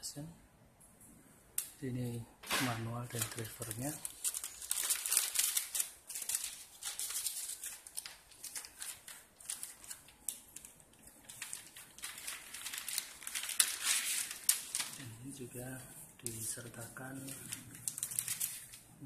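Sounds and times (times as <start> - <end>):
plastic and paper rustling: 2.0 - 19.0.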